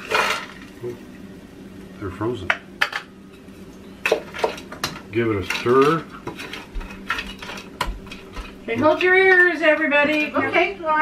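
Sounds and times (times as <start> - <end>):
vegetables stirred in pan: 0.0 - 1.0, 3.3 - 11.0.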